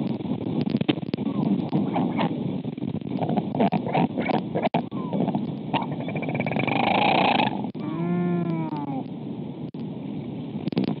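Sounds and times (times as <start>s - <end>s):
wind noise on microphone: 0.0s - 11.0s
albatross call: 3.6s - 9.0s.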